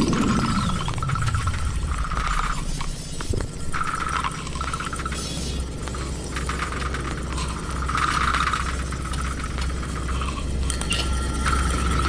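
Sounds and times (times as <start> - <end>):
hissing electronic texture: 0.0 - 10.7
low electronic drone: 0.0 - 12.0
scattered electronic clicks: 0.0 - 12.0.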